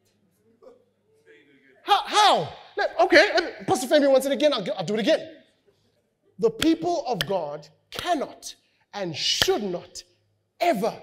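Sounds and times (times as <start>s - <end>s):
man speaking loudly: 1.3s - 5.4s, 6.4s - 11.0s.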